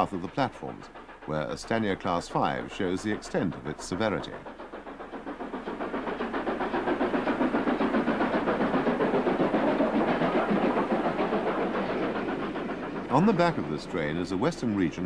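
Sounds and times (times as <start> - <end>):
steam locomotive exhaust beating: 0.0 - 15.0.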